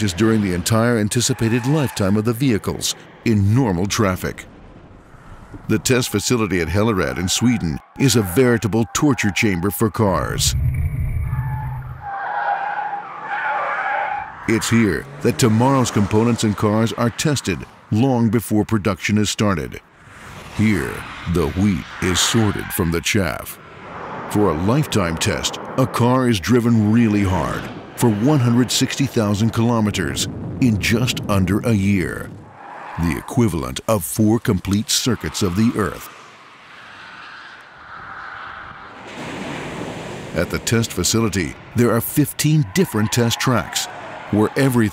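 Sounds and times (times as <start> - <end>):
car tyres squealing: 0.0 - 18.0, 20.0 - 30.5, 32.2 - 44.9.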